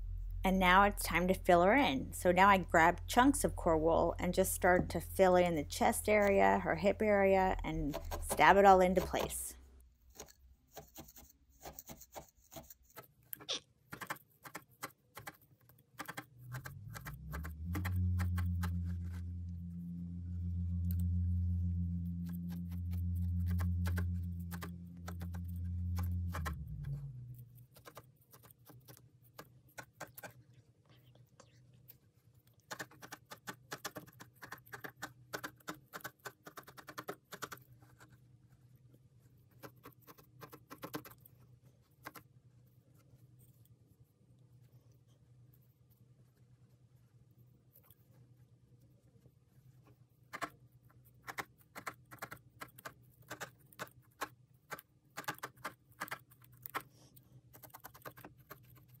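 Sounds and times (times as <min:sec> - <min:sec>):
loud low steady hum: 0:00.0 - 0:09.7, 0:16.6 - 0:27.8
felting needle rapid dry ticks: 0:07.5 - 0:09.4, 0:10.1 - 0:19.2, 0:27.6 - 0:30.4, 0:32.4 - 0:38.1, 0:39.4 - 0:42.3, 0:50.3 - 0:59.0.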